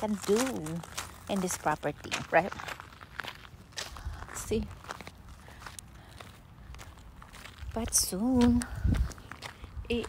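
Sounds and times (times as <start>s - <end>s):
footsteps on gravel: 0.0s - 10.0s
wind rumble on microphone: 7.6s - 10.0s.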